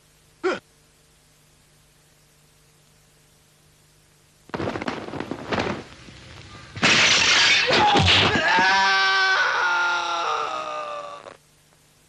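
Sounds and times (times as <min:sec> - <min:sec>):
crash of something breaking: 0:04.5 - 0:05.9, 0:06.7 - 0:08.9
long high yell: 0:07.6 - 0:11.4.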